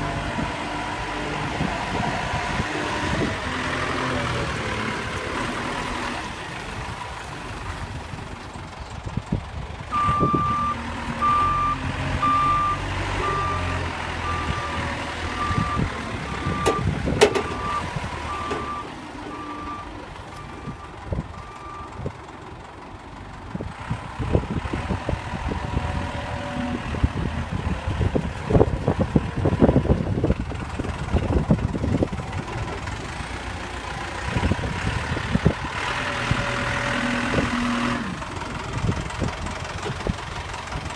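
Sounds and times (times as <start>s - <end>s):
forklift diesel engine running: 0.0s - 40.9s
reversing alarm beeping: 9.9s - 22.0s
clattering knocks: 16.6s - 17.7s.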